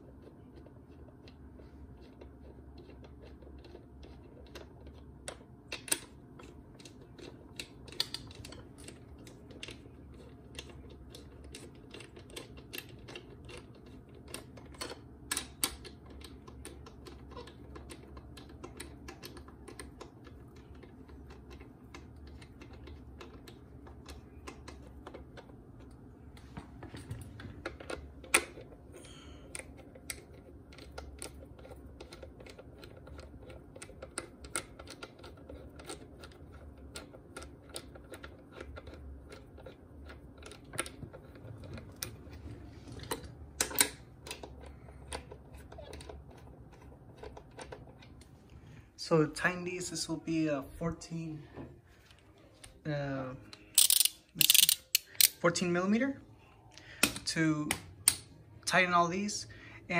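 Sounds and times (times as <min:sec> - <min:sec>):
socket ratchet clicking: 0:53.6 - 0:55.4.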